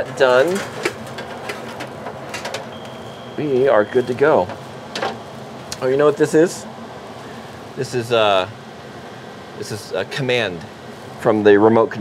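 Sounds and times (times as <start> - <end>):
low electrical hum: 0.0 - 12.0
thin high tone: 2.7 - 4.5.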